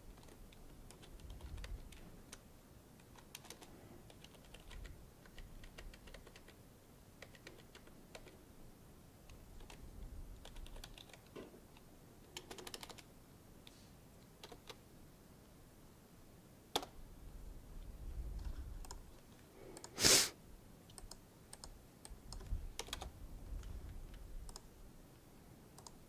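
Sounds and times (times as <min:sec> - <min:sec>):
typing on computer keyboard: 0:00.0 - 0:02.4, 0:03.0 - 0:06.6, 0:07.2 - 0:08.4, 0:09.6 - 0:09.8, 0:10.4 - 0:13.1, 0:14.4 - 0:14.8, 0:18.4 - 0:19.0, 0:20.9 - 0:24.7, 0:25.8 - 0:26.0.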